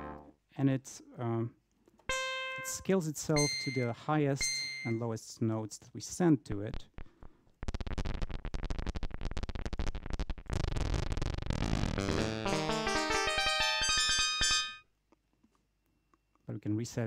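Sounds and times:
synthesizer notes: 0:00.0 - 0:00.3, 0:02.1 - 0:05.0, 0:11.5 - 0:14.8.

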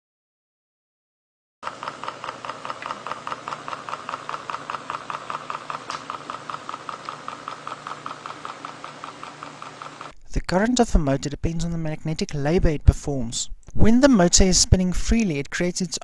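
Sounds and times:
electric motor clicking buzz: 0:01.6 - 0:10.2.

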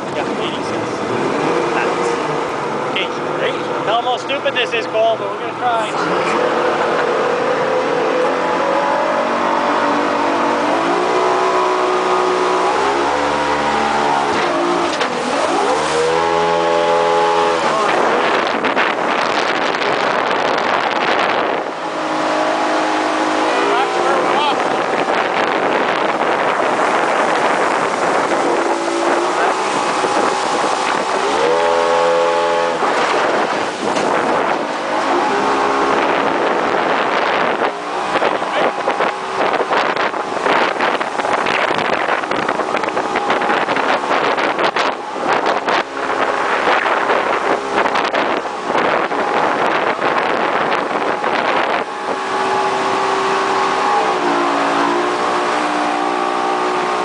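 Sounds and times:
boat engine running: 0:00.0 - 0:57.0
water rushing: 0:00.0 - 0:57.0
wind: 0:00.0 - 0:57.0.

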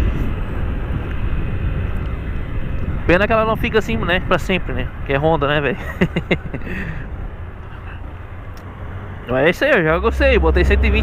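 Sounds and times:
wind noise on microphone: 0:00.0 - 0:08.6.

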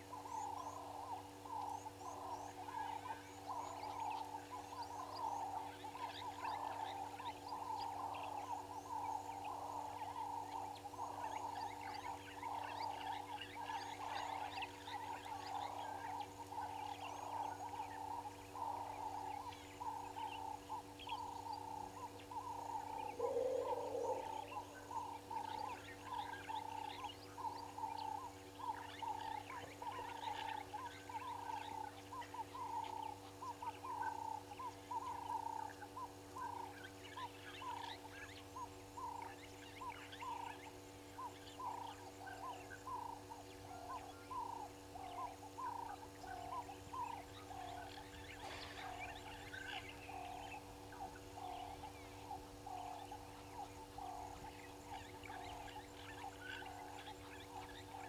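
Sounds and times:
faint electrical hum: 0:00.0 - 0:58.0
frogs calling: 0:00.0 - 0:58.0
low-pitched frog call: 0:22.4 - 0:25.4.

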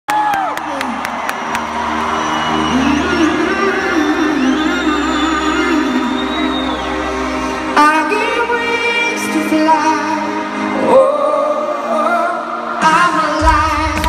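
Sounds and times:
crowd cheering and whooping: 0:00.1 - 0:08.9
amplified live concert music: 0:00.1 - 0:14.0.

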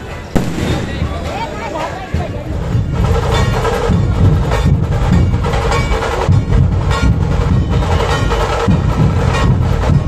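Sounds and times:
firework bang with rumbling tail: 0:00.4 - 0:01.4.

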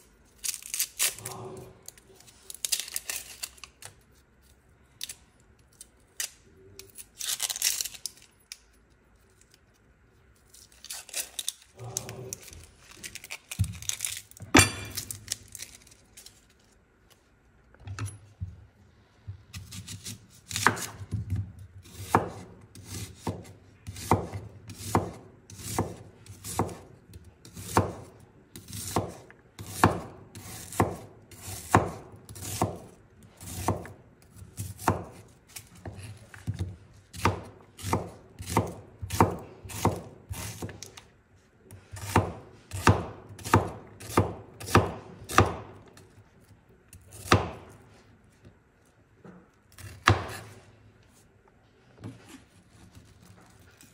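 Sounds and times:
knife slicing onion: 0:10.8 - 0:15.6, 0:19.4 - 0:41.1, 0:41.7 - 0:46.1, 0:46.9 - 0:48.0, 0:49.7 - 0:50.7, 0:52.0 - 0:53.9.

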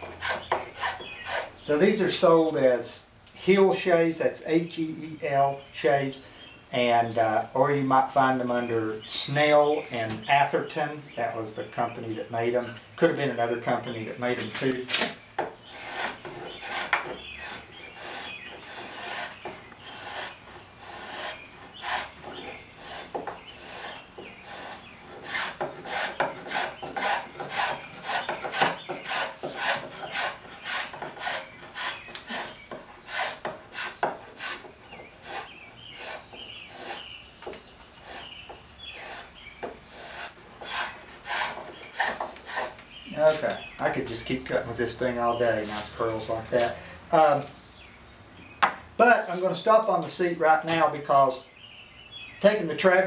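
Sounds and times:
heel shave scraping wood: 0:14.4 - 0:37.2, 0:38.0 - 0:43.6, 0:45.6 - 0:46.8.

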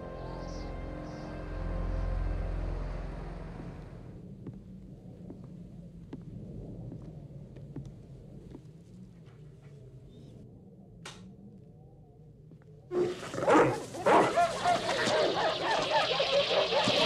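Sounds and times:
low hum: 0:00.0 - 0:12.9
dogs barking and yelping: 0:12.9 - 0:17.0.

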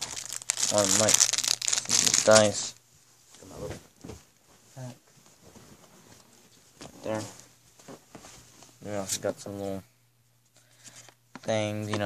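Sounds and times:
person speaking: 0:00.6 - 0:02.8, 0:11.4 - 0:12.0.

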